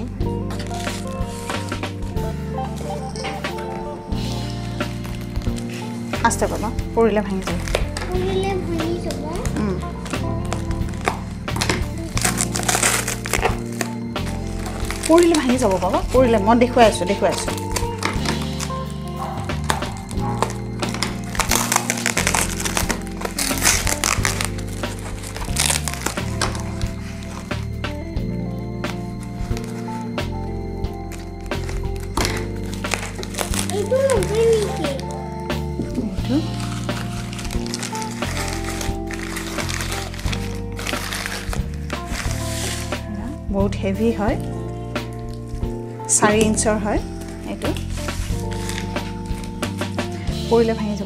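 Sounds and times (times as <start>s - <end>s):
background music: 0.0s - 51.0s
scissors cutting tape and foam: 9.1s - 16.1s, 17.3s - 27.7s, 31.1s - 35.1s, 36.4s - 43.2s, 47.6s - 50.0s.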